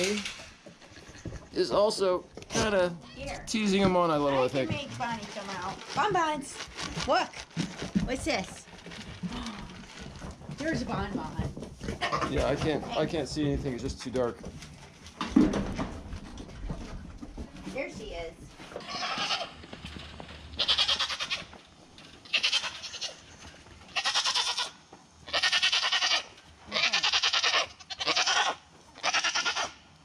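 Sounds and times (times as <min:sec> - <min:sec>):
goat bleating: 0:12.0 - 0:13.1, 0:18.7 - 0:19.6, 0:20.6 - 0:21.5, 0:22.2 - 0:29.8.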